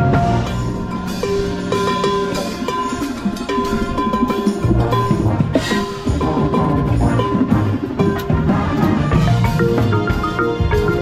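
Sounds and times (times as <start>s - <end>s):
drum corps ensemble music: 0.0s - 11.0s
marimba: 0.0s - 11.0s.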